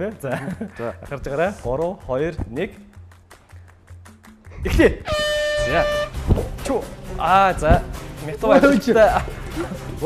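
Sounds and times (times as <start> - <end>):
game show horn steady tone: 5.1 - 6.2.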